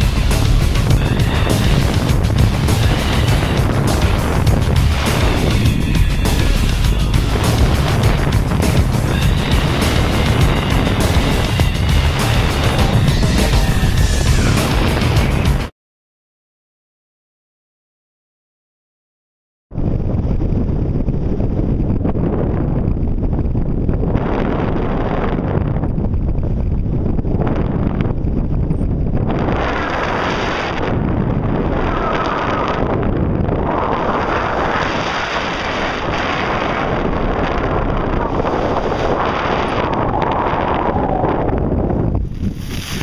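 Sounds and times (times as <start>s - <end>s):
wind buffeting microphone: 0.0s - 15.7s, 19.7s - 43.0s.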